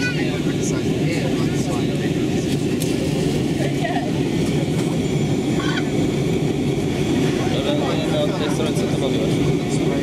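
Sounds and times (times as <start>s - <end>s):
airliner cabin rumble: 0.0s - 10.0s.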